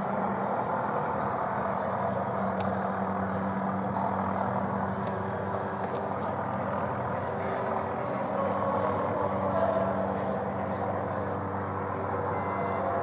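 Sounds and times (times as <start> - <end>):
mechanical hum: 0.0 - 13.0.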